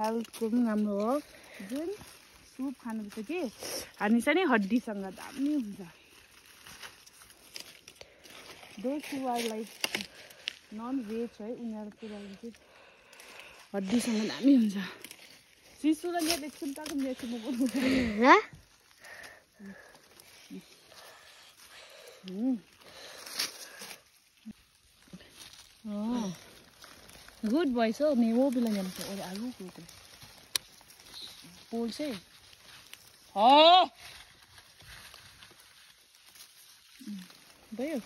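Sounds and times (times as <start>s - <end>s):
stems snapping: 0.0s - 11.2s, 11.8s - 33.4s
leaves and stems rustling: 0.0s - 38.0s.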